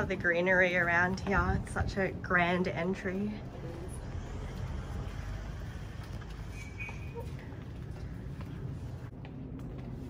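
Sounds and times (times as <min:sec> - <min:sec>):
faint footsteps: 0:00.0 - 0:10.0
steady low rumble: 0:00.0 - 0:10.0
bird chirp: 0:06.5 - 0:07.2.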